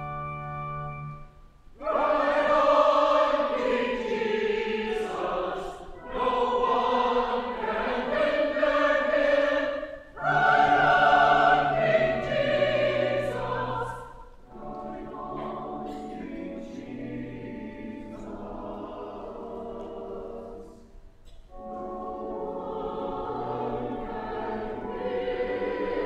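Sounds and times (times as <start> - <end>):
organ holding low notes: 0.0 - 26.0
choir singing: 1.8 - 26.0.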